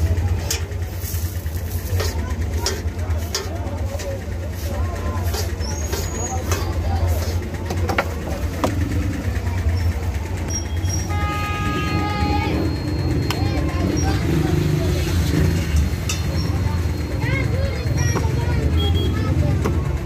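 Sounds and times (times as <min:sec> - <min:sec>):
traffic rumble: 0:00.0 - 0:20.0
vehicle horn: 0:11.0 - 0:12.7, 0:18.8 - 0:19.2.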